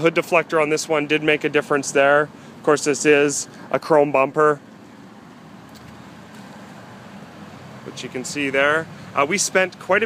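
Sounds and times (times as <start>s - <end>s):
low outdoor hum: 0.0s - 10.0s.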